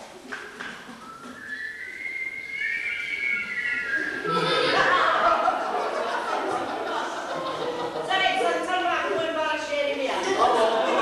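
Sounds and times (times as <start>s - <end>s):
high whistle: 1.0s - 5.2s.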